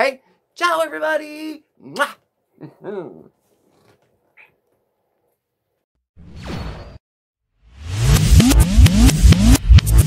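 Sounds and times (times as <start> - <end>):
electronic outro music: 7.7 - 10.0.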